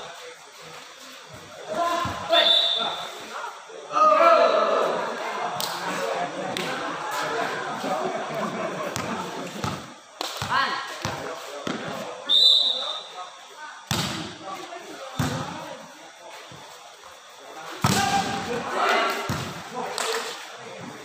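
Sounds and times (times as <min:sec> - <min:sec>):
whistle blast: 0:02.3 - 0:03.2, 0:12.3 - 0:13.1
players shouting: 0:03.8 - 0:05.5
ball being struck thuds: 0:13.9 - 0:14.3.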